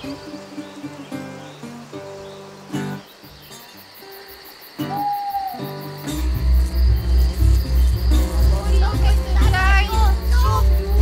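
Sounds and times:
crickets chirping: 0.0s - 11.0s
soft background music: 5.6s - 11.0s
deep pulsing beat: 6.3s - 11.0s.

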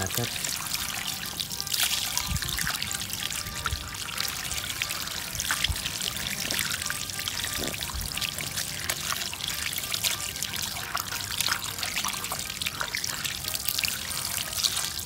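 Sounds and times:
background music: 0.0s - 15.0s
water pouring and splashing: 0.0s - 15.0s.

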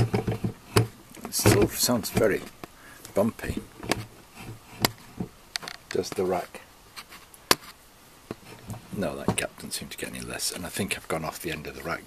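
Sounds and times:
milling machine head clicking and knocking: 0.0s - 2.3s.

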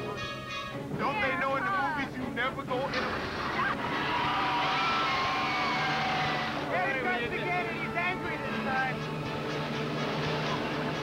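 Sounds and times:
people screaming and yelling: 3.4s - 7.1s.

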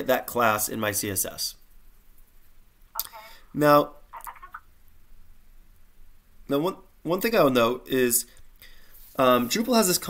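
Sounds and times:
low steady hum: 0.1s - 9.1s.

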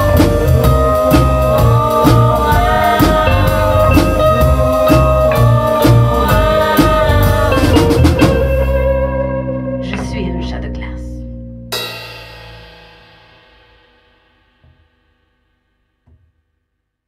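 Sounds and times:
band with electric guitar: 0.0s - 11.8s.

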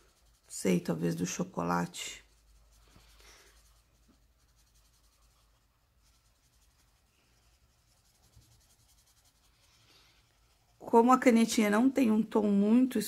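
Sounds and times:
marker scratching on paper: 0.0s - 11.4s.

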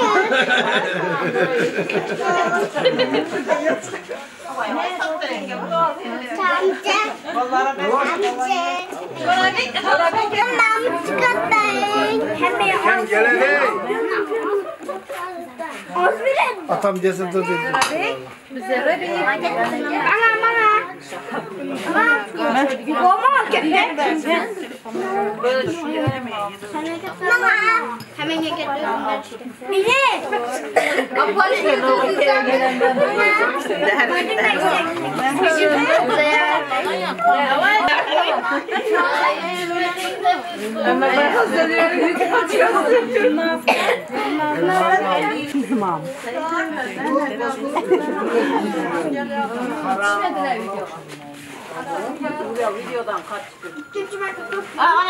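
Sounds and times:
people chattering: 0.0s - 55.0s.

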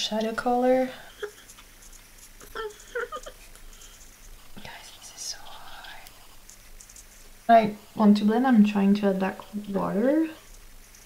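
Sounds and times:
woman whispering: 4.6s - 6.2s.

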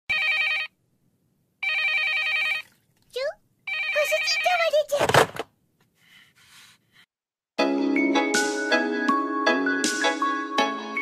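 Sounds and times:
telephone ringing: 0.1s - 0.8s, 1.6s - 2.8s, 3.7s - 4.9s.

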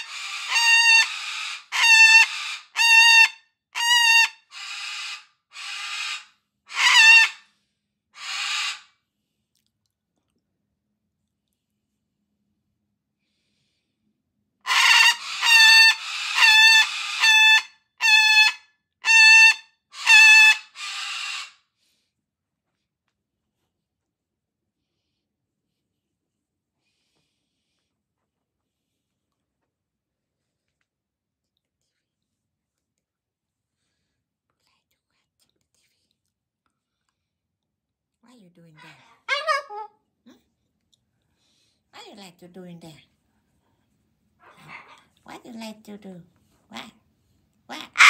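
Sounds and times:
cockatoo calling: 0.0s - 7.4s, 14.7s - 21.6s, 39.0s - 40.0s, 47.8s - 48.0s
faint whisper-like hiss: 30.3s - 37.2s.

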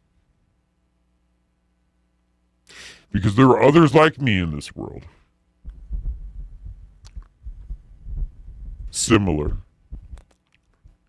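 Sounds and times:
low throbbing bass: 5.6s - 10.2s.

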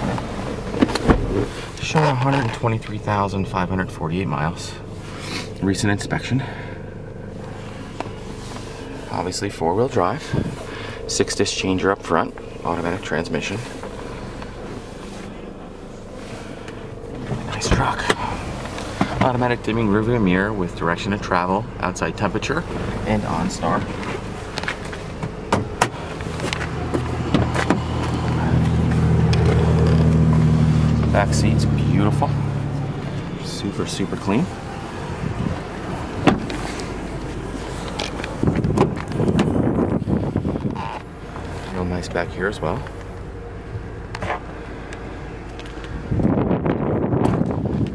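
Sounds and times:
car engine idling: 0.0s - 47.9s
wind rumbling on microphone: 34.9s - 36.6s, 38.2s - 41.0s, 46.0s - 47.9s.

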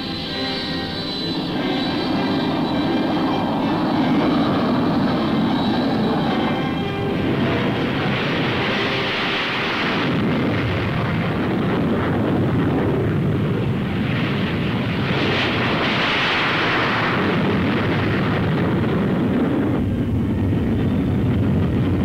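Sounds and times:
jet engines at takeoff: 0.0s - 22.0s.

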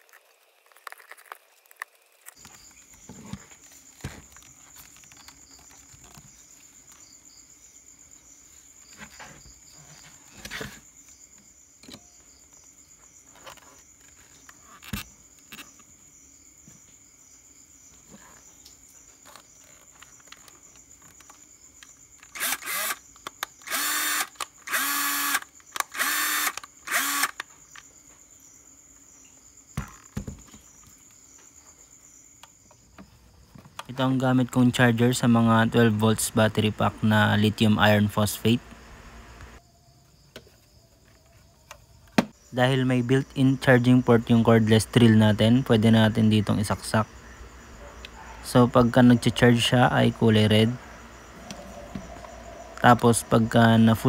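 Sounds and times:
clicks and rustles of handling: 0.0s - 7.0s, 18.0s - 22.4s
cordless drill motor whirring: 22.2s - 27.5s.

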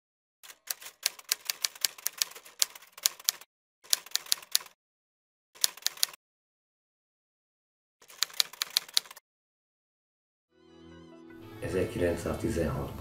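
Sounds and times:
typewriter keys clacking: 0.4s - 4.8s, 5.6s - 6.2s, 8.0s - 9.2s.

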